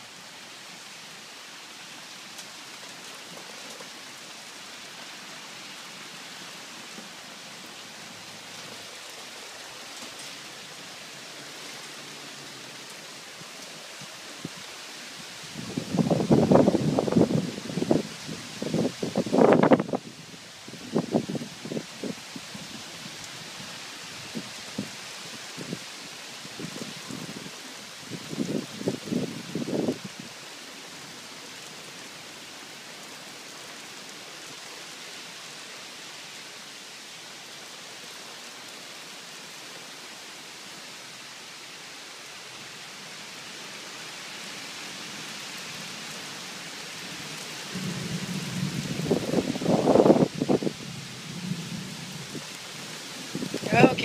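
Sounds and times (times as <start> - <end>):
falling rain hiss: 0.0 - 54.0.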